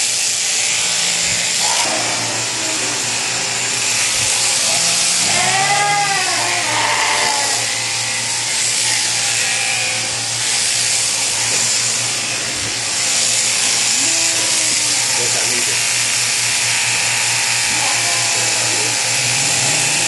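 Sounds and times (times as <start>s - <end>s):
electric shears clipping fleece: 0.0s - 20.0s.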